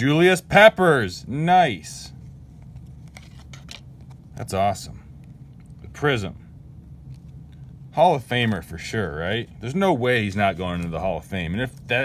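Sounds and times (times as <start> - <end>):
low steady hum: 0.0 - 12.0
cards ticking and rustling: 2.3 - 4.6, 10.5 - 12.0.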